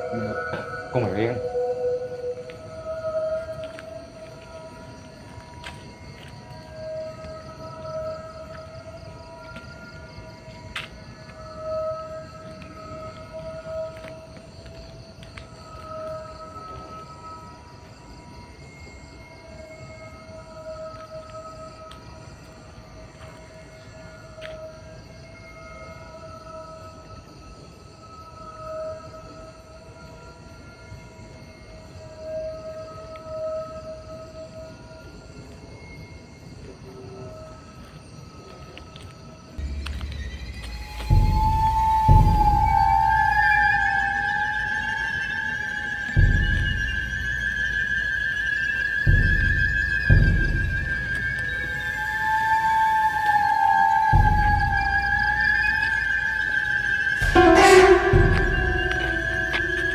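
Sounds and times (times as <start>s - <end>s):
drawn-out tone: 0.0s - 4.6s, 39.6s - 59.9s
insects chirping: 0.0s - 59.9s.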